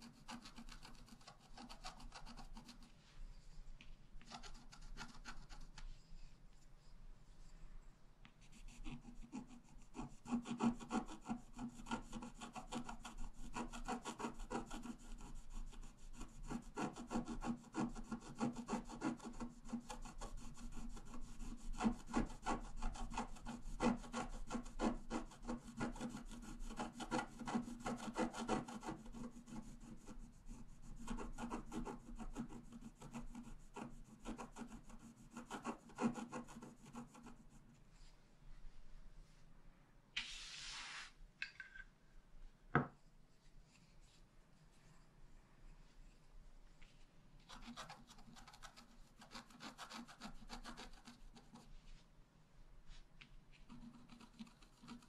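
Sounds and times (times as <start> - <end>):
stylus scratching coated paper: 0.0 - 3.0, 4.2 - 5.9, 8.4 - 37.6, 47.4 - 51.9, 53.5 - 55.0.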